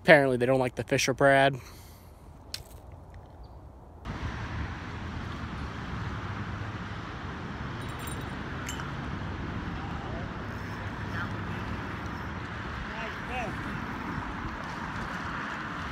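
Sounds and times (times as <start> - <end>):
road traffic on bridge: 1.3 - 15.9
light clinks: 7.8 - 8.9.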